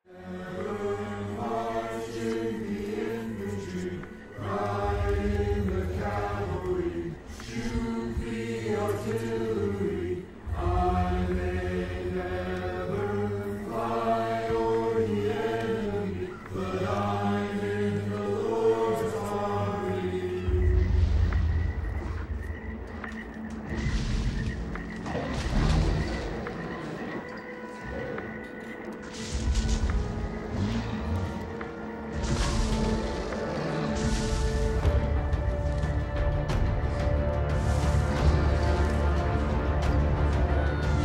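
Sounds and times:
dramatic film music: 0.0 - 41.0
voices chanting together: 0.0 - 41.0.

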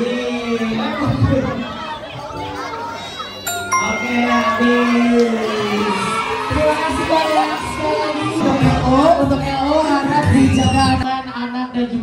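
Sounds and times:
crowd of children and adults talking: 0.0 - 12.0.

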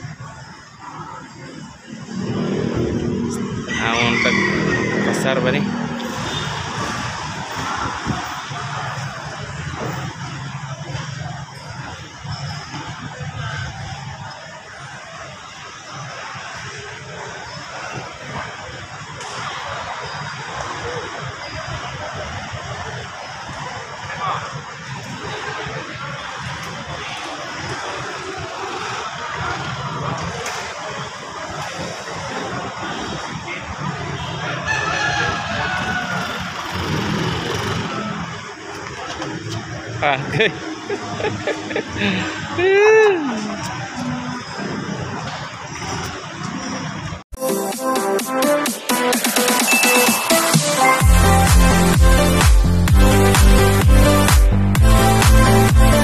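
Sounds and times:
people talking: 0.0 - 47.2
scooter engines running: 0.0 - 47.3.

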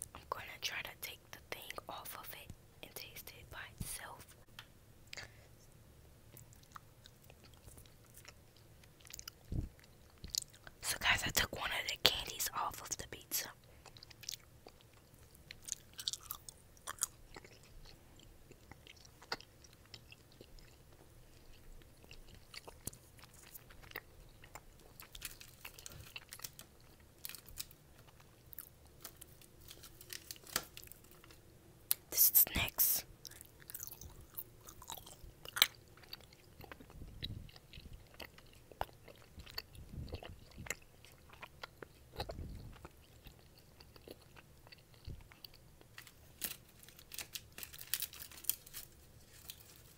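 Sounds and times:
chewing gummy candy: 6.3 - 49.9.

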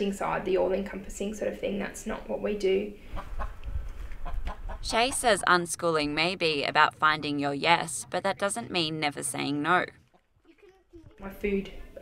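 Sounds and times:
hens clucking: 3.1 - 9.4.

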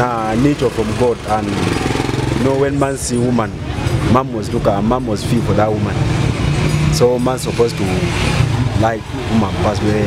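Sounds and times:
man speaking into a microphone: 0.0 - 1.8, 2.4 - 6.1, 6.9 - 10.0
street traffic engine hum: 0.0 - 10.0.

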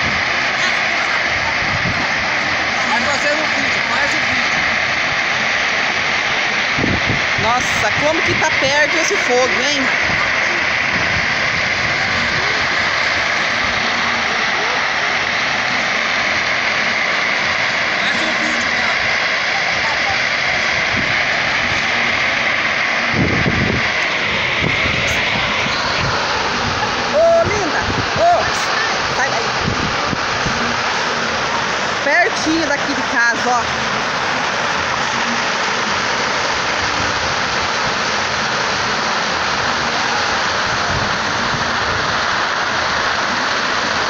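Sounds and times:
fire crackling: 0.0 - 44.0.

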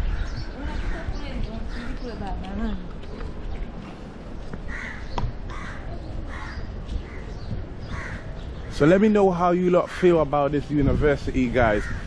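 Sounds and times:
bird calling: 0.0 - 9.2
outdoor background noise: 0.0 - 12.0.

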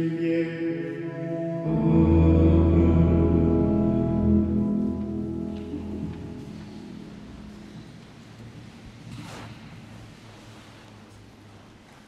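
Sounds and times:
church organ chords: 0.8 - 7.8.

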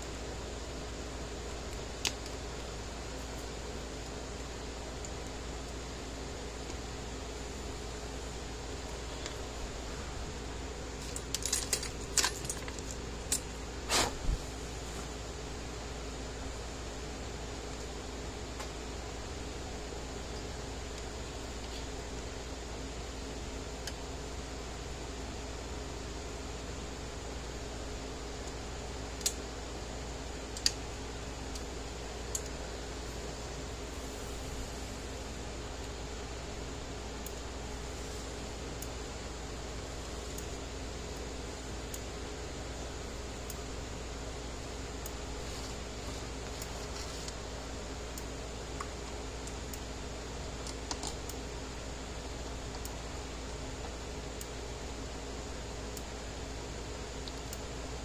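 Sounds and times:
low workshop hum: 0.0 - 58.0
small metal parts clicking: 11.0 - 13.5.

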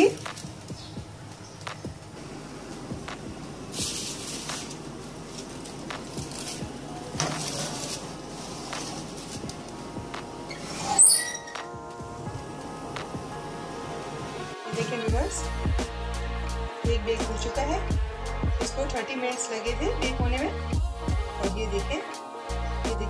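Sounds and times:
steady hum: 0.0 - 10.8, 11.5 - 18.8
background music: 0.0 - 23.0
metal tray scraping on wire rack: 10.5 - 11.6.

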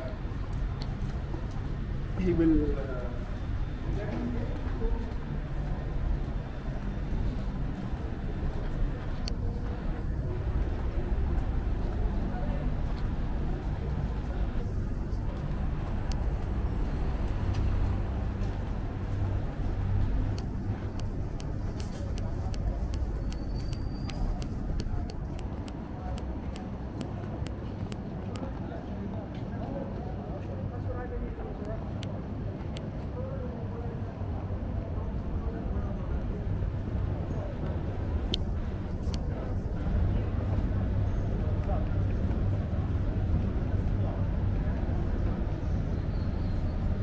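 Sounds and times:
faint distant voices: 0.0 - 47.0
traffic hum: 0.0 - 47.0
light ticks: 19.2 - 28.5.

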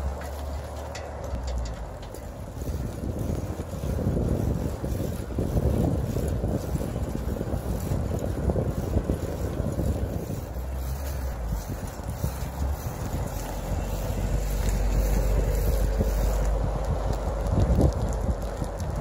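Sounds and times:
road noise: 0.0 - 19.0
wind rumbling on microphone: 0.0 - 19.0.

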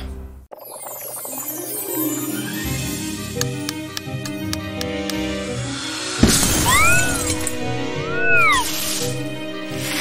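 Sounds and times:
background music: 1.3 - 10.0
cartoon crash: 6.2 - 7.4.

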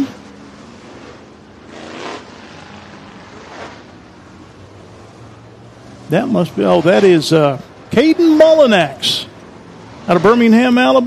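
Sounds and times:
race car engine passing: 0.0 - 11.0.

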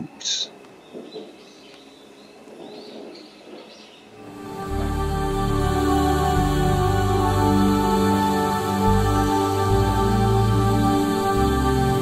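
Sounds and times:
faint forest ambience: 0.0 - 12.0.

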